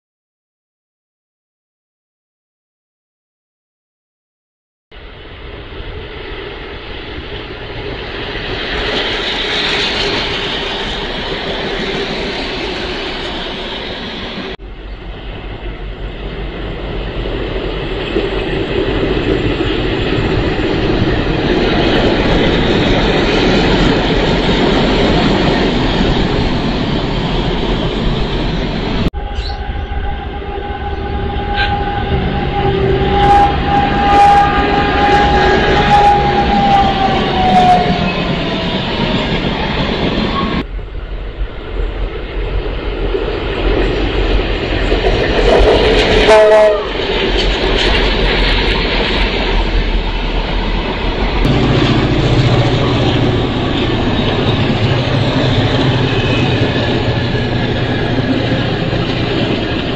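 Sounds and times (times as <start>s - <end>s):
diesel locomotives passing: 5.0s - 59.9s
locomotive horn blast: 29.2s - 38.0s, 45.6s - 47.1s, 51.5s - 55.2s.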